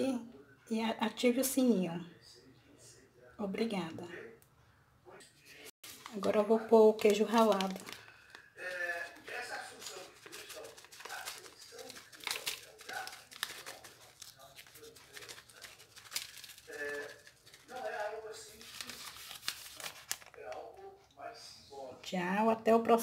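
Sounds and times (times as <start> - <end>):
plastic packet crinkling: 5.8 - 20.8.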